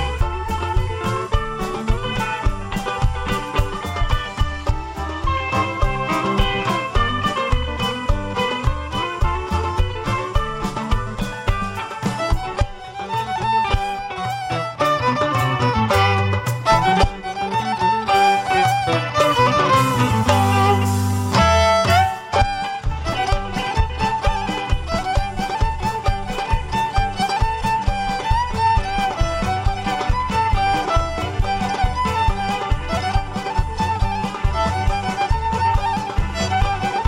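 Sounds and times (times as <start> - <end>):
live band music: 0.0 - 37.0
mandolin picking melody: 0.0 - 37.0.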